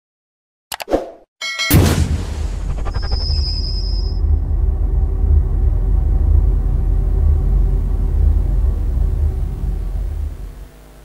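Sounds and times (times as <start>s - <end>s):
thin high ringing tone: 1.4s - 1.8s, 2.7s - 4.6s
deep bass rumble: 2.4s - 10.7s.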